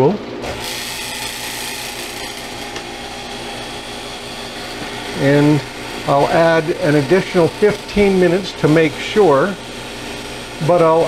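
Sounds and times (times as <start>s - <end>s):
vacuum pump running: 0.0s - 11.0s.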